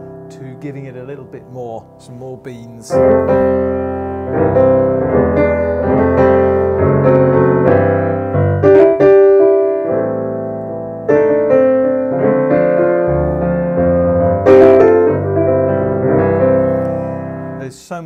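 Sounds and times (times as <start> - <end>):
piano chords: 0.0 - 18.0.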